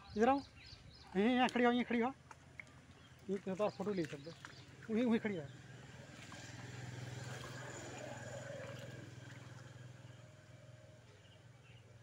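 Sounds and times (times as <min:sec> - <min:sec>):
small engine passing by: 0:04.5 - 0:12.0.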